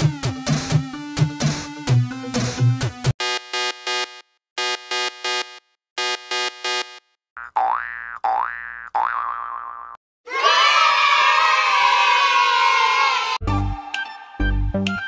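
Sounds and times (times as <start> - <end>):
springy boing sounds: 7.4 - 10.0
children cheering: 10.3 - 13.4.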